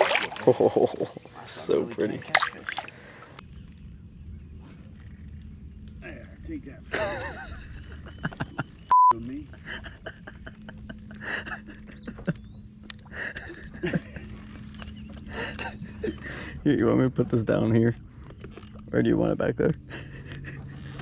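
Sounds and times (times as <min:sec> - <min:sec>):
people talking: 0:00.5 - 0:02.7, 0:18.9 - 0:19.8
censor bleep: 0:08.9 - 0:09.2.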